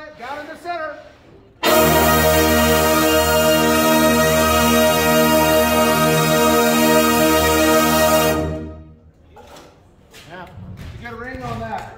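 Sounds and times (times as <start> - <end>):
brass section holding a loud chord: 1.6 - 9.0.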